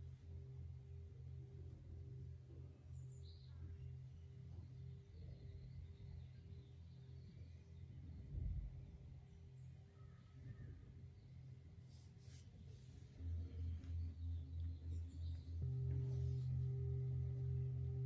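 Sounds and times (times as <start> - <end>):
faint pulsing low hum: 0.0 - 18.0
faint bird chirp: 2.5 - 18.0.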